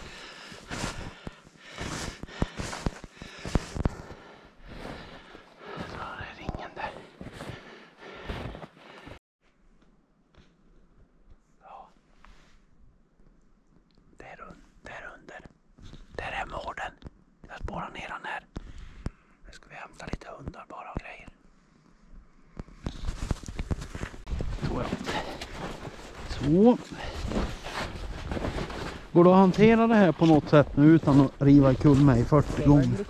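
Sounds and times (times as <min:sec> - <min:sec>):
man whispering: 0:05.8 - 0:07.1, 0:11.6 - 0:12.0, 0:14.1 - 0:18.5, 0:19.4 - 0:21.4.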